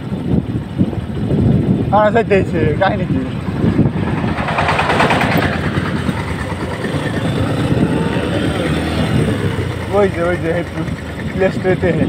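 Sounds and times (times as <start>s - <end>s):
motorcycle engine rumble: 0.0s - 12.0s
road noise: 0.0s - 12.0s
rushing wind: 0.0s - 12.0s.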